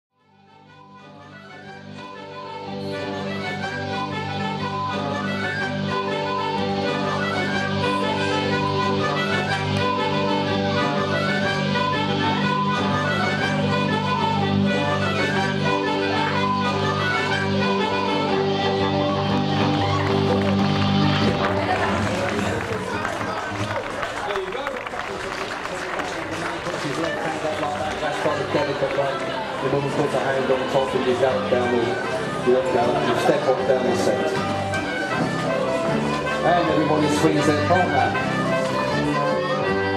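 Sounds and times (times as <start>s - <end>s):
ceilidh band dance tune: 0.9s - 24.2s, 26.2s - 39.9s
crowd chattering: 1.0s - 39.9s.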